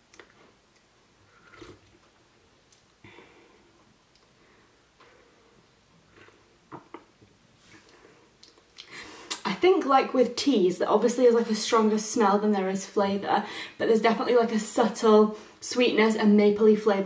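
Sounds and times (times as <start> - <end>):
soft mouth sounds: 1.3 - 2.1.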